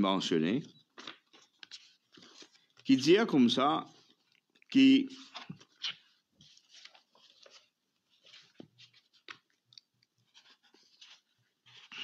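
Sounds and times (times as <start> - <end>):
paper rustling: 0.9 - 3.1, 5.1 - 12.0
man talking: 2.9 - 4.0, 4.7 - 5.2.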